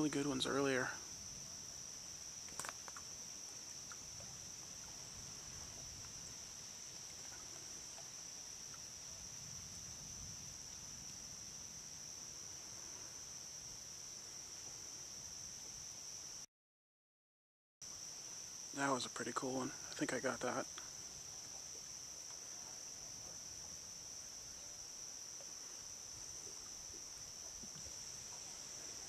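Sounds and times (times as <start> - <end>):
crickets chirping: 0.0 - 16.5, 17.8 - 29.0
small click: 2.5 - 3.1.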